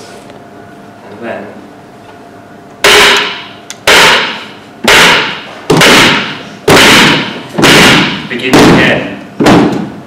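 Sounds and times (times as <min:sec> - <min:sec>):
heavy rhythmic banging: 0:02.8 - 0:10.0.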